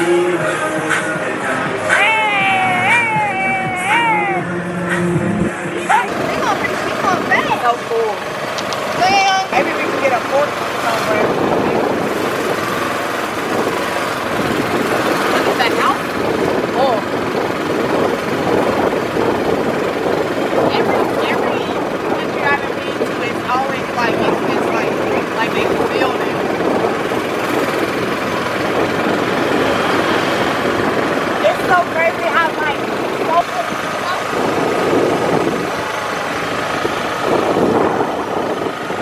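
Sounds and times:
indistinct voices: 0.0s - 39.0s
motor and road noise: 0.0s - 39.0s.

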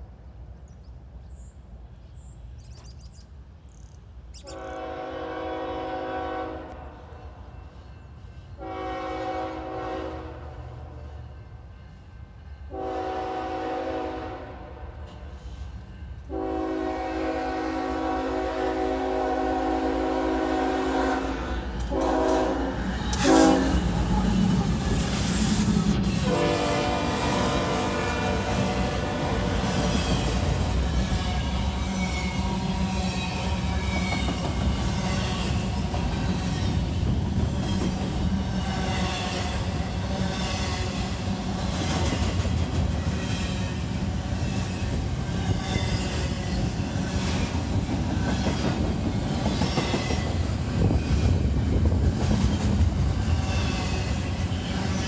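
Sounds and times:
train horn blasts: 4.4s - 7.5s, 8.6s - 11.5s, 12.6s - 15.5s, 16.2s - 24.6s, 26.0s - 30.4s
train cars rolling by: 4.5s - 55.0s.

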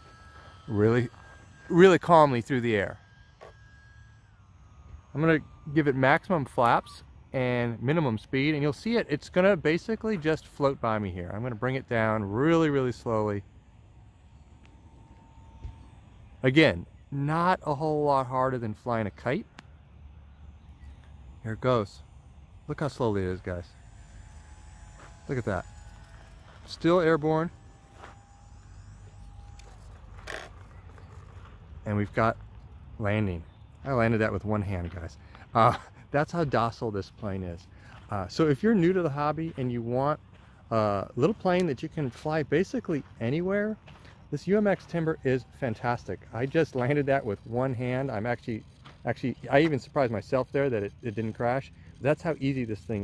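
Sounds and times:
small electric motor and propeller whine: 0.0s - 53.0s.

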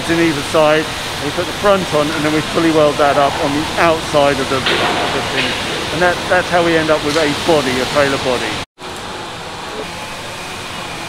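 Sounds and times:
faint hum: 0.0s - 8.6s
continuous even hiss: 0.0s - 9.8s.

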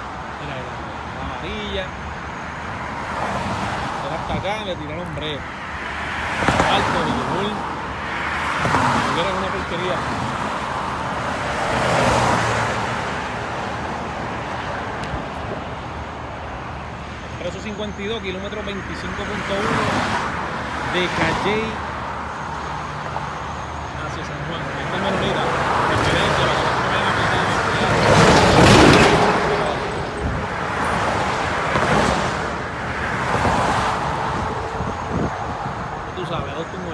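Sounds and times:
vehicles passing on highway: 0.0s - 36.9s.

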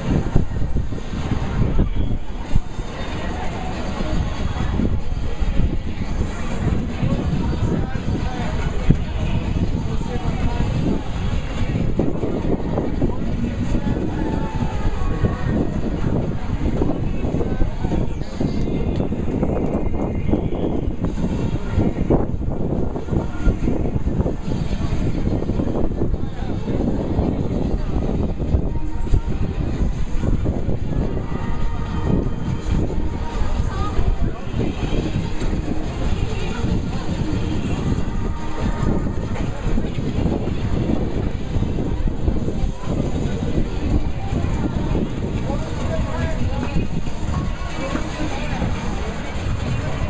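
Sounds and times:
crowd shouting and talking: 0.0s - 50.0s
wind rumble on microphone: 0.0s - 50.0s.

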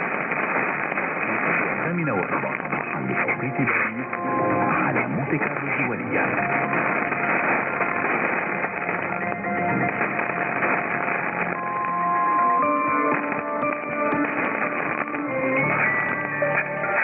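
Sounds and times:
music over am radio: 0.0s - 17.0s
radio static and hiss: 0.0s - 17.0s.

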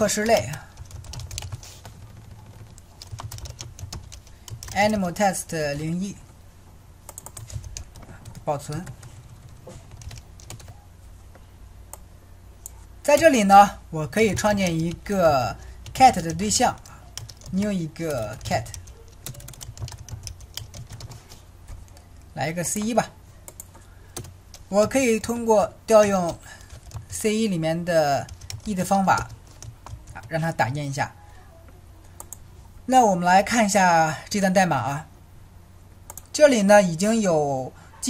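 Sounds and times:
typing on computer keyboard: 0.0s - 5.0s, 7.1s - 10.8s, 15.8s - 22.0s, 26.2s - 27.1s, 28.2s - 30.3s.

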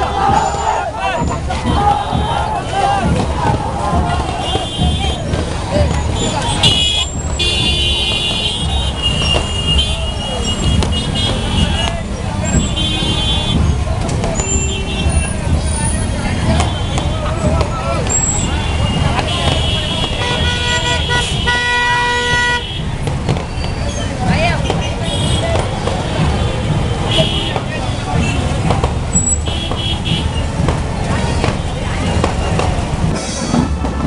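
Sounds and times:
motorcycle and car horns tooting: 0.0s - 32.8s
crowd voices: 0.0s - 34.0s.

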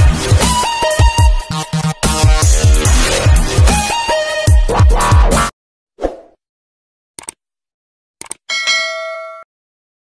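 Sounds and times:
bright bell ding: 8.5s - 9.5s.

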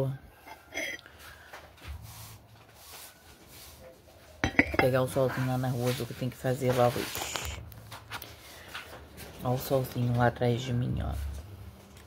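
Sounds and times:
faint handling sounds: 0.4s - 10.4s.

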